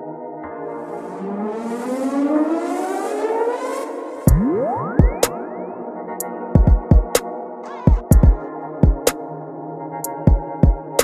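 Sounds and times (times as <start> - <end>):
synthesizer chord pad rising: 0.0 - 10.2.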